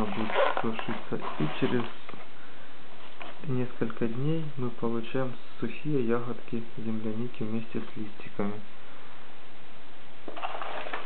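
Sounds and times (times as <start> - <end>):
paper rustling: 0.0 - 2.2, 10.3 - 11.0
faint background hiss: 0.0 - 11.0.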